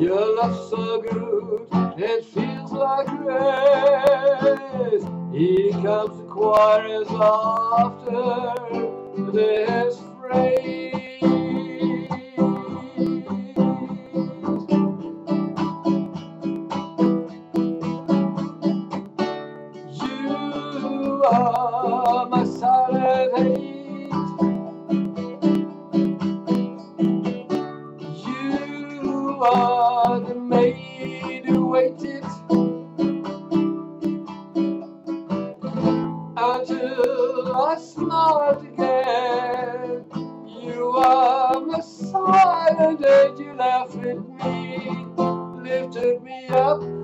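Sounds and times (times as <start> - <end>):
acoustic guitar strumming: 0.0 - 47.0
person singing: 0.0 - 47.0.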